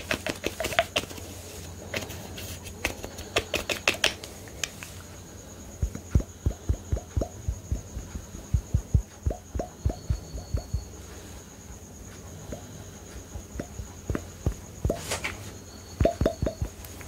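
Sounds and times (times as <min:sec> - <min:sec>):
fingernail tapping bottle cap: 0:02.8 - 0:04.3.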